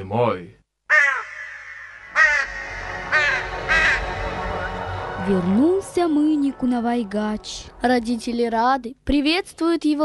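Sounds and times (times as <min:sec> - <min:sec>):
harsh crow-like caws: 0:00.9 - 0:05.1
low music bed: 0:02.4 - 0:08.6.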